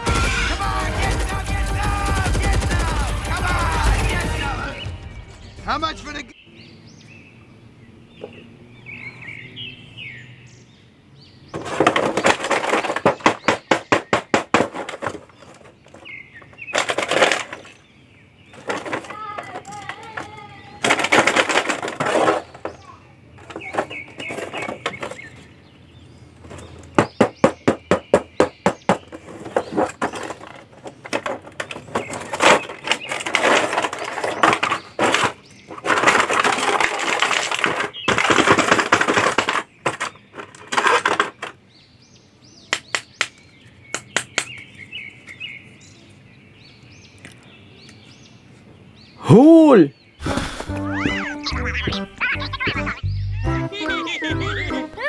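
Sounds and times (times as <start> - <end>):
rapid sharp clicks: 0.0 - 4.4
plastic rustling and crinkling: 29.1 - 41.6.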